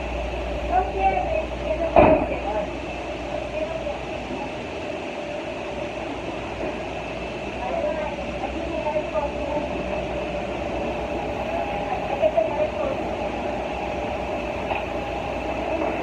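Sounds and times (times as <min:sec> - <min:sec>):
steady mechanical drone: 0:00.0 - 0:16.0
faint murmur of voices: 0:00.6 - 0:16.0.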